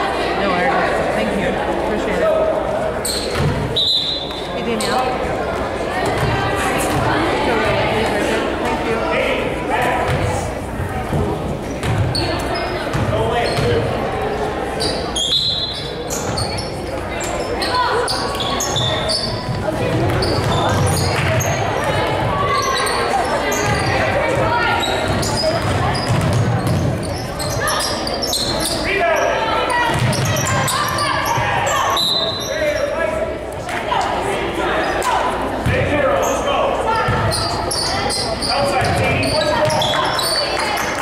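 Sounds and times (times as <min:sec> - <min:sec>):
sneakers squeaking: 0:03.0 - 0:08.2, 0:09.9 - 0:33.1, 0:34.7 - 0:41.0.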